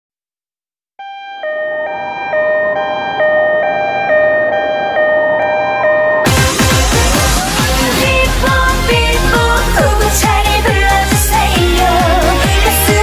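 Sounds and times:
two-tone emergency siren: 1.0 - 7.8.

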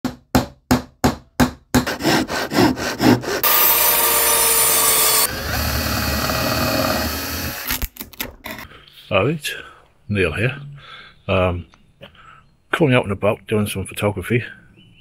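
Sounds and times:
hand saw cutting: 1.8 - 7.8
power tool running: 3.0 - 7.9.

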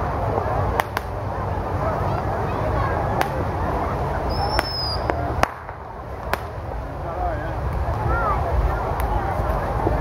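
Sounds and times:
crowd chatter: 0.0 - 10.0
firecracker pops: 0.7 - 1.2, 3.2 - 3.5, 4.3 - 6.6
high whistle: 4.3 - 5.1.

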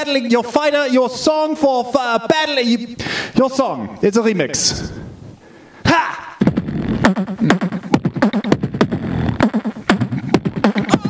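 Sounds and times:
beatboxing into a microphone: 5.9 - 11.0.

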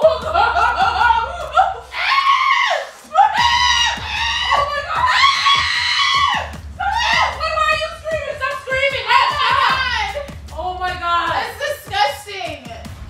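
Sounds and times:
woman screaming: 1.0 - 10.3.

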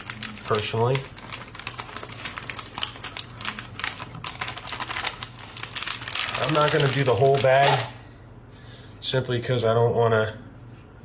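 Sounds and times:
frozen corn pouring into glass dish: 0.0 - 8.0.

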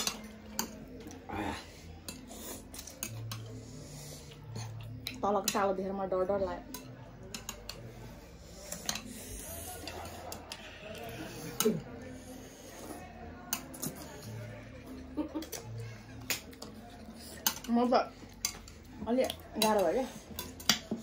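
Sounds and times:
chopsticks clicking on plates: 0.0 - 1.2, 2.0 - 3.6, 6.7 - 8.0, 8.6 - 11.8, 13.5 - 14.4, 15.2 - 17.7, 18.3 - 21.0
faint murmurs of voice: 0.0 - 5.2, 6.6 - 21.0.

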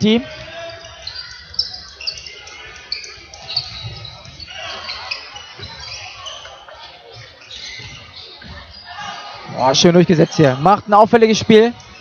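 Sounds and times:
shoes squeaking on floor: 0.0 - 10.4
murmur of spectators: 0.0 - 12.0.

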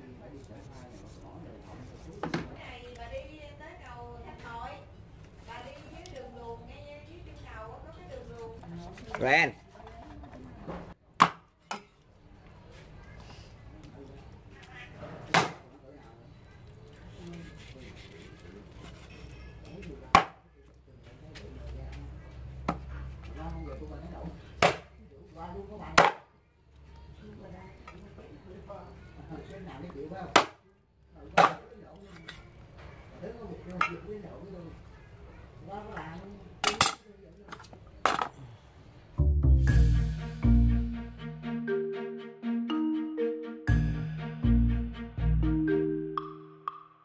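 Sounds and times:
cleaver chopping on wooden board: 11.2 - 11.5, 20.1 - 20.4, 24.6 - 24.9, 26.0 - 26.2, 31.4 - 31.6.

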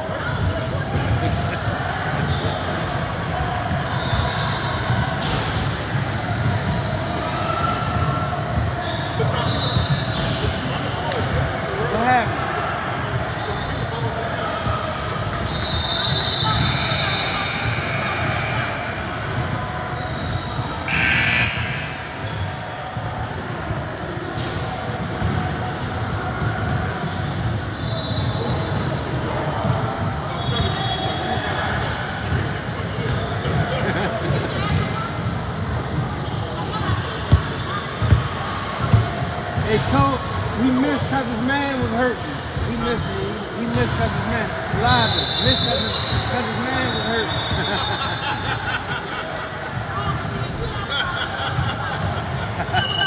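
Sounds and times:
brief sharp noise: 20.9 - 22.0.

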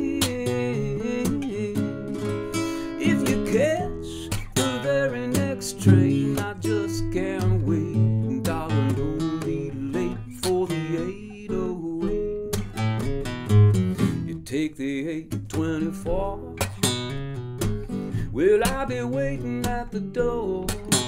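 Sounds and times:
fingerpicked nylon-string guitar: 0.0 - 21.0.

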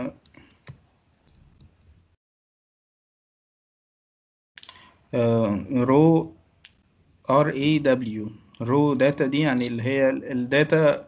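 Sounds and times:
computer clicks: 0.0 - 1.8, 4.6 - 4.9.

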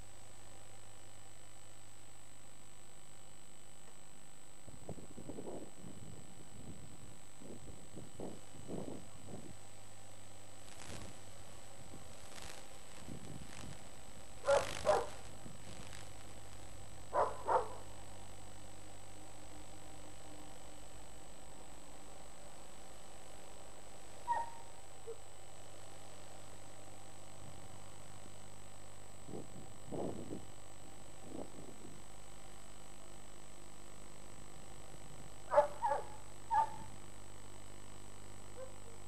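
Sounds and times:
steady background hiss: 0.0 - 39.0
dog barking: 14.4 - 15.2, 17.1 - 17.9, 24.3 - 25.2, 35.5 - 36.9, 38.6 - 39.0.

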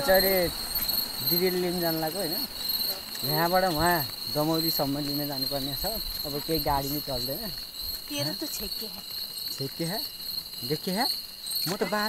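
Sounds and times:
boys talking and laughing: 0.0 - 10.0, 11.5 - 12.0
crickets chirping: 0.0 - 12.0.

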